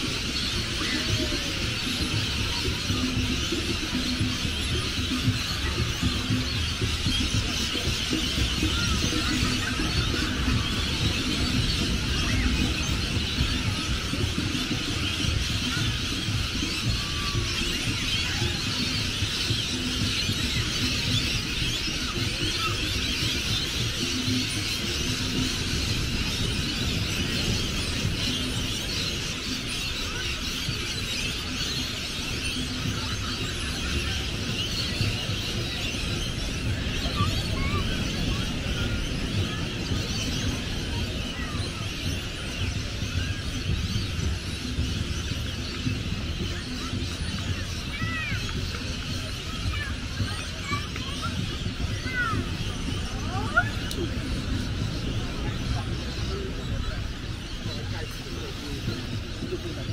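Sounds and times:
flock of birds screeching: 0.0 - 59.9
steady low rumble: 31.9 - 59.9.

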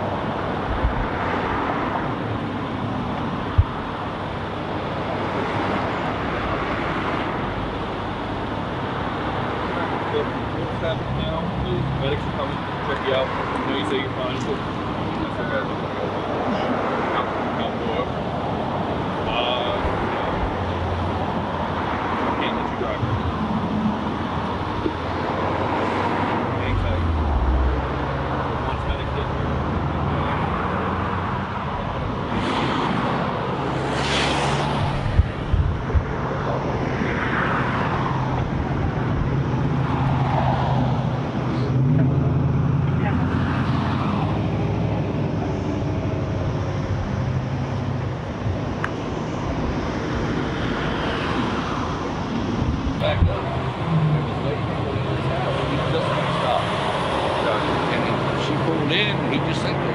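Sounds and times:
vehicles passing on road: 0.0 - 59.9.

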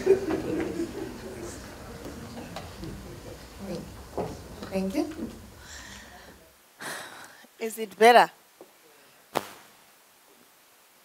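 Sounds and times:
breath into microphone: 5.6 - 7.5.

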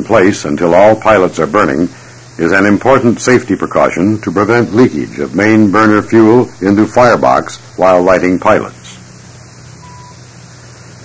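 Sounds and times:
soundtrack hiss and hum: 0.0 - 11.0
short faint beep: 9.8 - 10.2.

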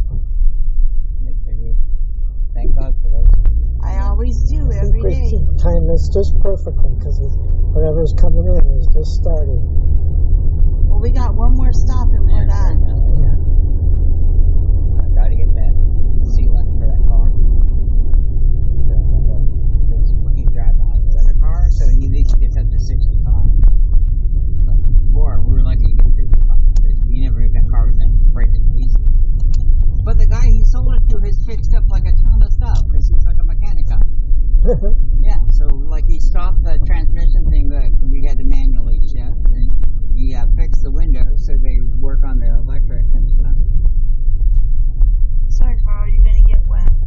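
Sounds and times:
voices talking: 1.3 - 1.8, 2.6 - 9.6, 10.9 - 13.4, 15.0 - 17.4, 18.9 - 23.7, 24.7 - 34.0, 34.6 - 43.6, 45.5 - 46.9.

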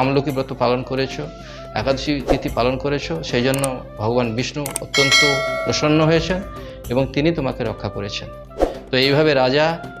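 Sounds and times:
sharp click sound effects: 4.7 - 5.4.

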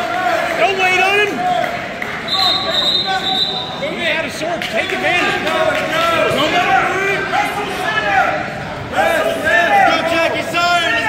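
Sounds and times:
crowd and coaches shouting: 0.0 - 11.0
referee's whistle blast: 2.2 - 3.8.

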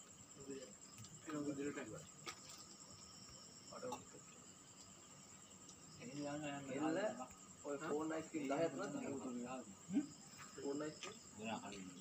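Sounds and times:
crickets chirring: 0.0 - 12.0
voice: 6.0 - 12.0.

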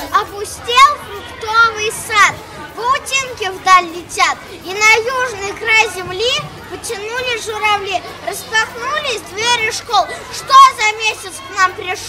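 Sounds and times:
young boy talking: 0.0 - 12.0.

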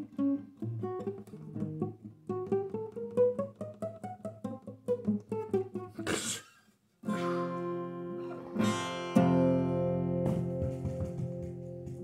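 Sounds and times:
acoustic guitar picked: 0.0 - 12.0.

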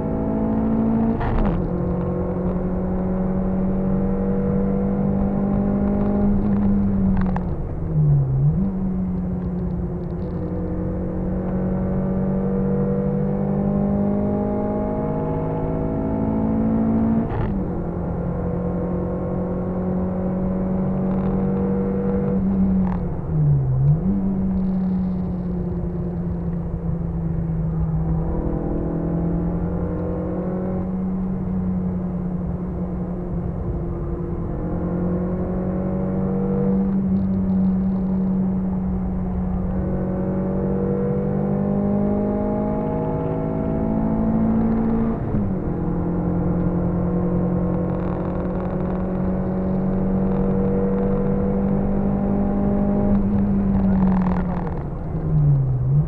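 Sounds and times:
car engine accelerating hard: 0.0 - 56.0.

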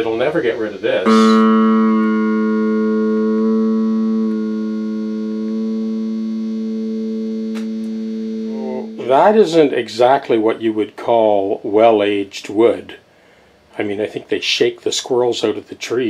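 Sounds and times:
electric guitar note ringing: 1.0 - 10.3.

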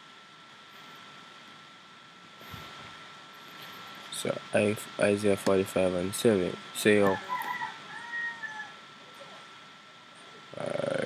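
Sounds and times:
faint animal call: 7.2 - 9.4.

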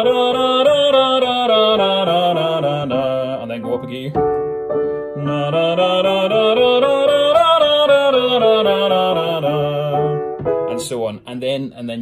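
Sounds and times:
man singing a scale: 0.0 - 4.4, 5.1 - 12.0
piano chord: 0.0 - 11.2
piano accompaniment: 0.0 - 12.0.

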